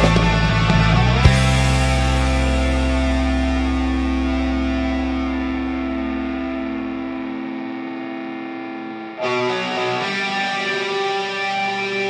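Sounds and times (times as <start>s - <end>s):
metal band playing loud: 0.0s - 7.7s, 9.2s - 12.0s
distorted electric guitar chord: 0.0s - 12.0s.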